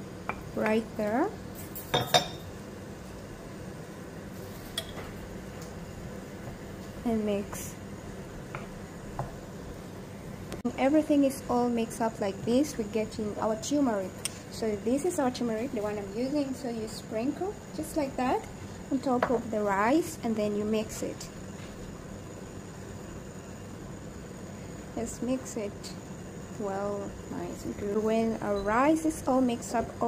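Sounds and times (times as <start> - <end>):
low hum and hiss: 0.0 - 30.0.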